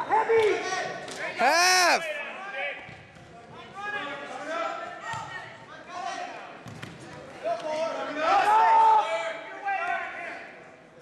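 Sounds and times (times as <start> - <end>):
echoing shouted voices: 1.3 - 2.5.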